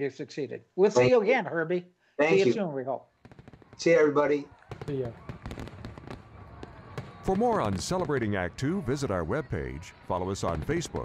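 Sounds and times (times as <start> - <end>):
fireworks popping and crackling: 3.2 - 11.0.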